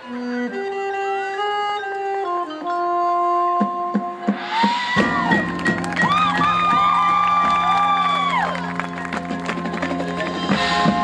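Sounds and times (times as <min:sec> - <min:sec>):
marching band playing: 0:03.4 - 0:11.0.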